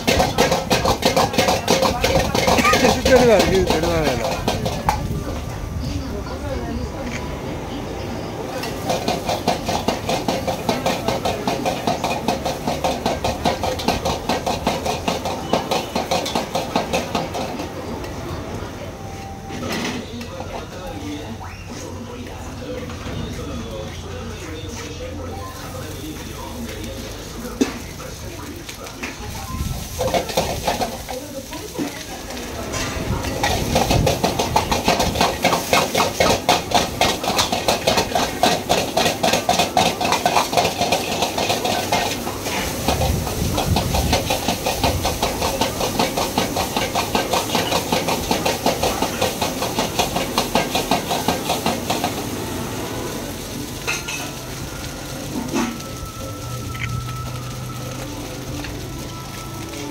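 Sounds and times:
metal utensils scraping a wok: 0.0 - 5.4, 8.5 - 18.2, 25.7 - 57.6
rice sizzling: 0.0 - 59.9.

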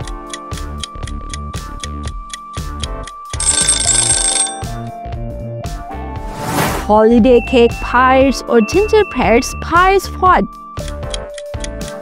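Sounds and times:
clock ticking: 0.0 - 4.3
upbeat background music: 0.0 - 12.0
bell ringing rapidly: 3.4 - 4.8.

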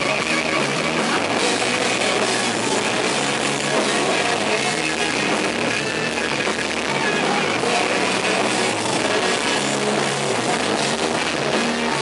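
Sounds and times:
drum kit: 0.0 - 12.0
electric guitar: 0.0 - 12.0.

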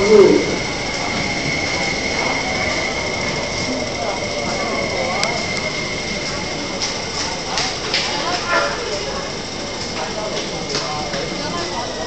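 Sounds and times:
train high-pitched whine: 0.0 - 12.0
train wheels on rail: 0.0 - 12.0.

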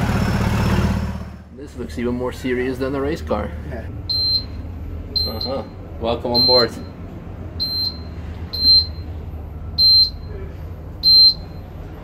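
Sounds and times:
electronic beeper with chirp: 6.4 - 6.9, 7.6 - 9.1, 9.8 - 10.3.

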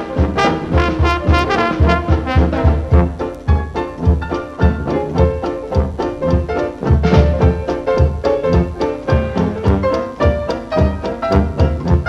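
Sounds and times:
dixieland jazz band playing: 0.0 - 12.0.

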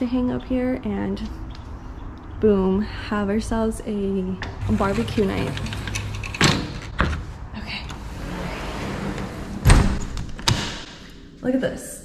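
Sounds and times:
sliding door on its track: 4.4 - 11.0
door shutting with a thud: 8.8 - 10.9.

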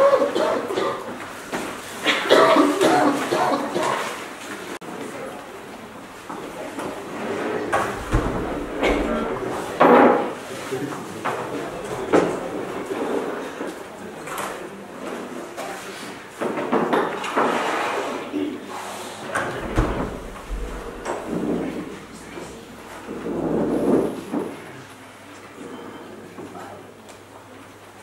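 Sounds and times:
low murmuring voices: 0.0 - 28.0.

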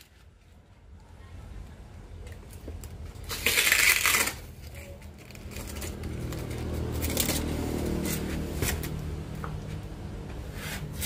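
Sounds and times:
tape and cardboard crackles: 2.2 - 9.8
packing tape rasping off roll: 2.8 - 9.0.

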